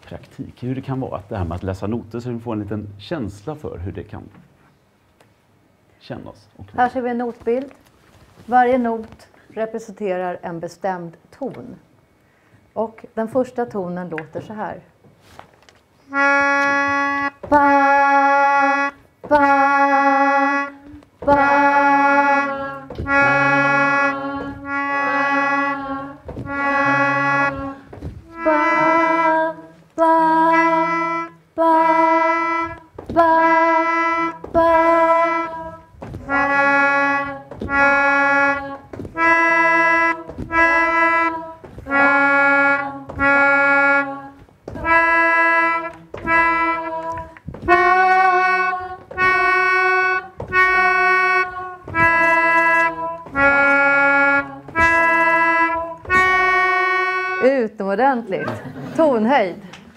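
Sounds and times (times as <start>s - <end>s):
melodica notes: 16.1s - 57.8s.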